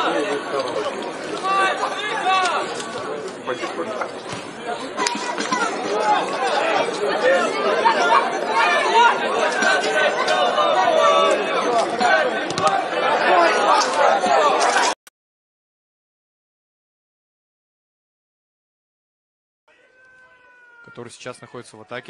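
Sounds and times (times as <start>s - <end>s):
crowd chatter: 0.0s - 15.0s, 19.7s - 22.0s.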